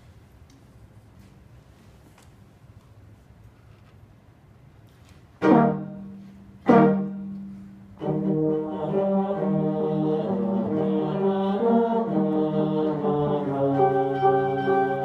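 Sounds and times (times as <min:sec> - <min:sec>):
brass and strings ensemble playing: 0:05.4 - 0:15.0.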